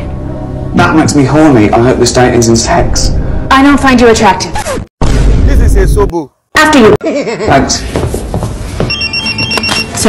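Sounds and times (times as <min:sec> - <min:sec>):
phone ringtone beeping: 0:08.9 - 0:10.0.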